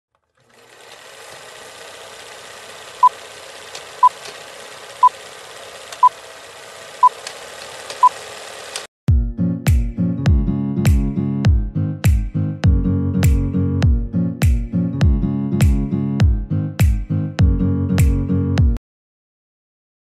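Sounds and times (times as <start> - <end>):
music with deep drum beats: 9.1 - 18.8.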